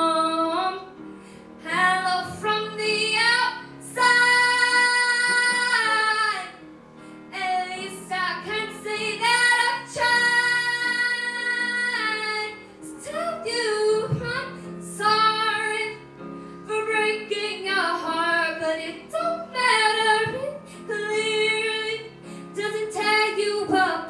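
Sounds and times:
girl singing into microphone: 0:01.7 - 0:06.6, 0:07.3 - 0:16.0, 0:16.7 - 0:22.0, 0:22.6 - 0:24.0.

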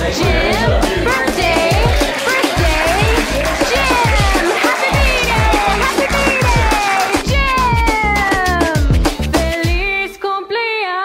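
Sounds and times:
music with bass-drum beat: 0:00.0 - 0:10.0.

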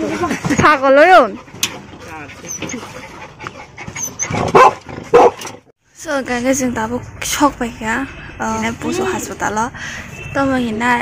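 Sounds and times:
dog whining: 0:02.4 - 0:05.4
dog barking: 0:04.3 - 0:05.5.

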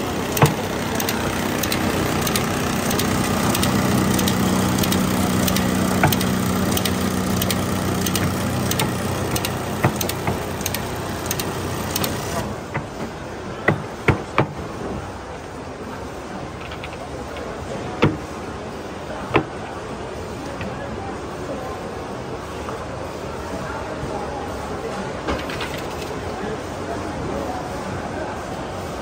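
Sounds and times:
light machine clicks: 0:00.0 - 0:12.5
machine hiss and hum: 0:00.0 - 0:13.6.

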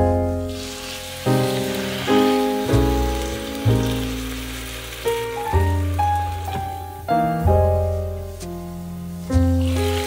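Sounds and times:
piano music: 0:00.0 - 0:10.0
chicken sizzling in frying pan: 0:00.2 - 0:10.0.

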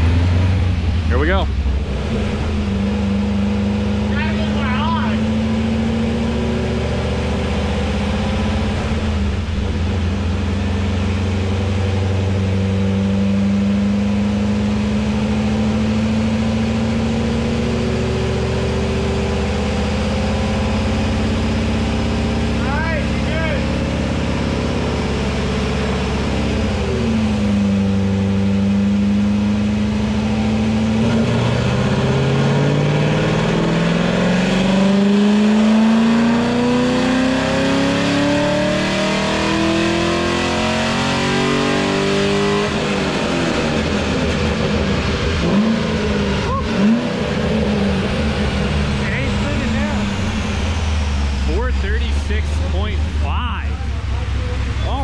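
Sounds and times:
car engine revving on a dyno: 0:00.0 - 0:55.0.

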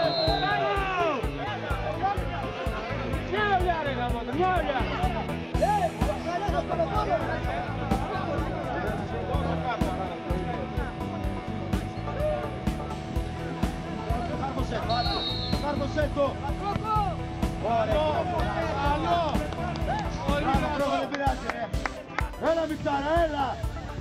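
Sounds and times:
referee's whistle blast: 0:00.0 - 0:00.7, 0:14.8 - 0:15.8
background music: 0:00.0 - 0:24.0.

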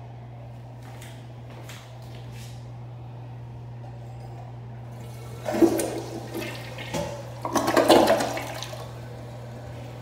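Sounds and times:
toilet flushing: 0:04.9 - 0:10.0.

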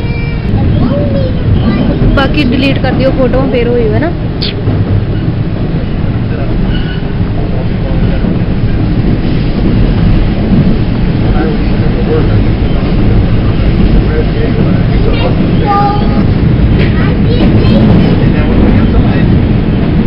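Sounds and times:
subway train wheels rumbling: 0:00.0 - 0:20.0.

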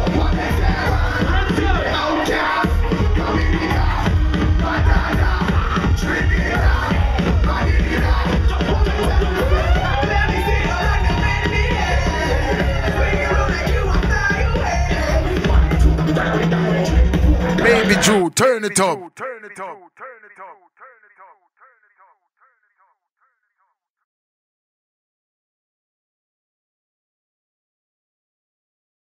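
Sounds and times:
nightclub crowd: 0:00.0 - 0:14.0, 0:17.6 - 0:19.1
club music with heavy bass beat: 0:17.6 - 0:19.1.

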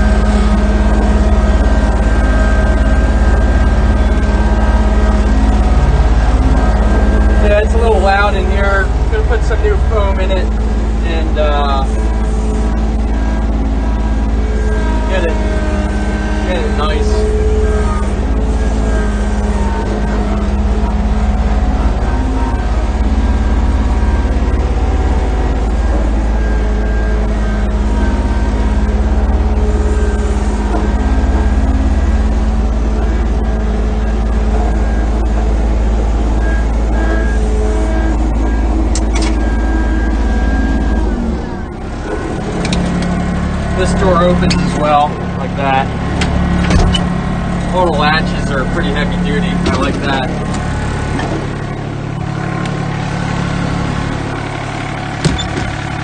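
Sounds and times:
diesel engine running: 0:00.0 - 0:56.0.

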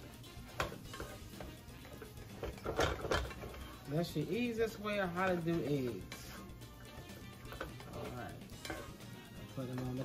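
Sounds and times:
utensil scraping skillet: 0:00.4 - 0:10.0
metal utensil clinking on skillet: 0:07.5 - 0:10.0.

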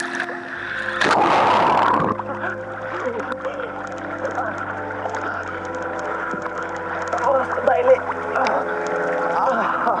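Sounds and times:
sustained background tones: 0:00.0 - 0:10.0
water sloshing: 0:00.0 - 0:10.0.

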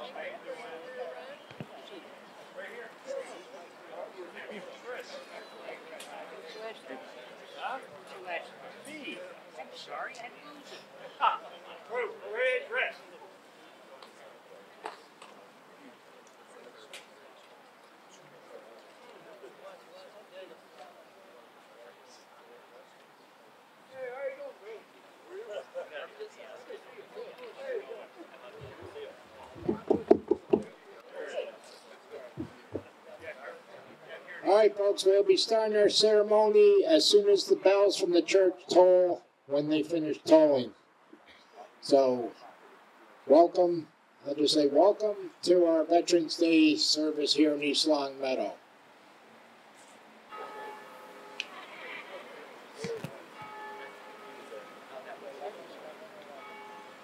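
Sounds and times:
murmuring chatter: 0:00.0 - 0:57.0
dull thumps through microphone: 0:29.6 - 0:30.7
soft thump: 0:32.4 - 0:32.9
church bells tolling: 0:50.3 - 0:52.4, 0:53.2 - 0:57.0.

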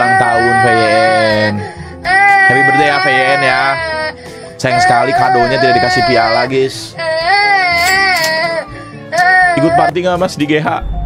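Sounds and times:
small child wailing: 0:00.0 - 0:09.9.

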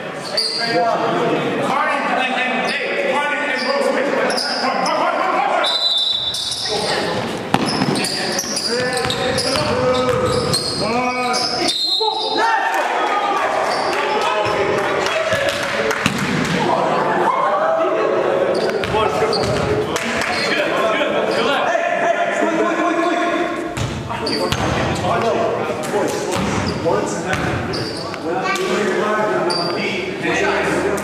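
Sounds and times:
players and spectators shouting: 0:02.0 - 0:15.9, 0:16.6 - 0:19.7, 0:20.3 - 0:23.6
basketball bouncing on court: 0:07.5 - 0:08.2, 0:08.8 - 0:10.6, 0:18.8 - 0:19.8, 0:23.8 - 0:25.4, 0:27.3 - 0:27.7.

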